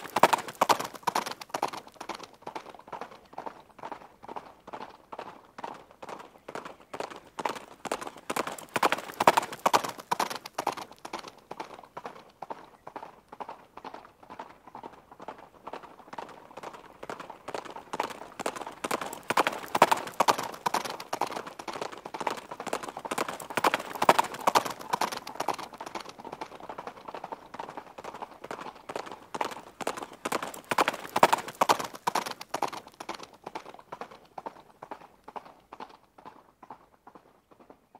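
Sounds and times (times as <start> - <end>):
horse hooves clip-clopping: 0.0 - 37.9.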